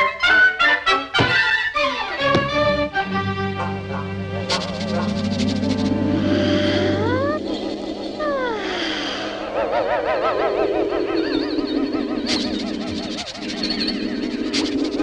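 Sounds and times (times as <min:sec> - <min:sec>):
orchestral cartoon music: 0:00.0 - 0:08.4.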